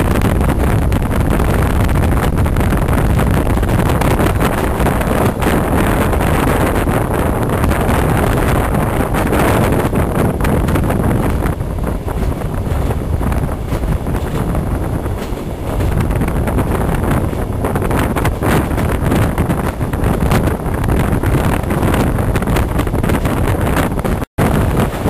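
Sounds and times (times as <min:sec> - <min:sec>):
train running inside carriage: 0:00.0 - 0:25.0
wind buffeting microphone: 0:00.0 - 0:25.0.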